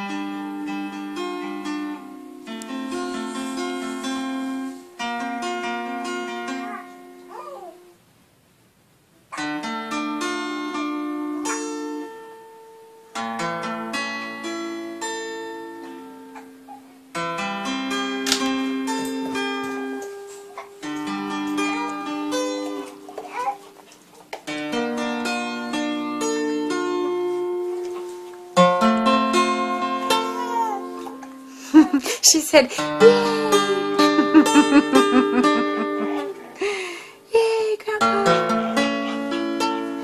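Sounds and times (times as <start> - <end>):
acoustic guitar played slowly: 0.0 - 8.1, 9.2 - 40.0.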